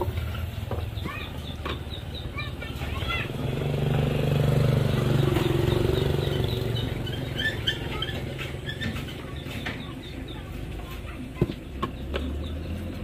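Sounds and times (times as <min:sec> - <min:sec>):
vehicle engine passing by: 0:00.0 - 0:11.0, 0:11.6 - 0:13.0.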